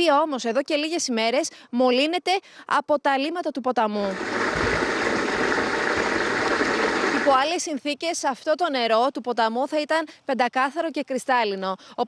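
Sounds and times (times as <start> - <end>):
water rushing: 4.1 - 7.4.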